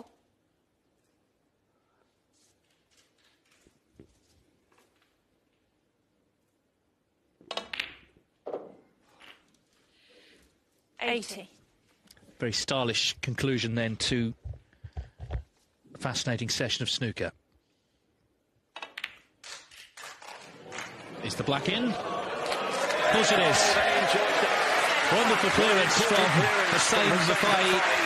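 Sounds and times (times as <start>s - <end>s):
snooker balls clicking: 7.4s - 9.5s, 18.7s - 19.9s
audience applause: 20.0s - 28.0s.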